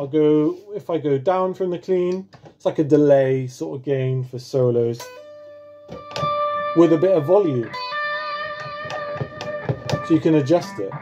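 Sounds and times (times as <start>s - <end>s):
electric guitar note with delay: 6.0s - 11.0s.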